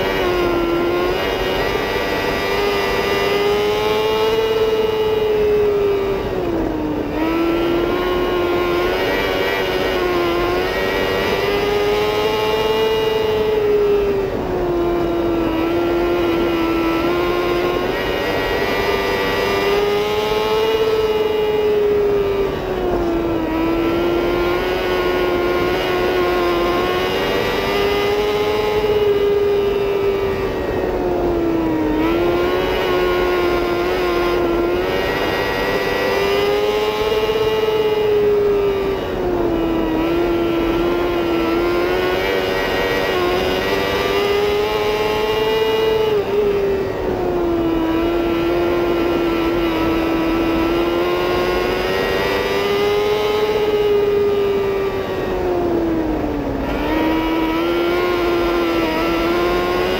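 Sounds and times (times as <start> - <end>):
race car engine at high revs: 0.0 - 59.9.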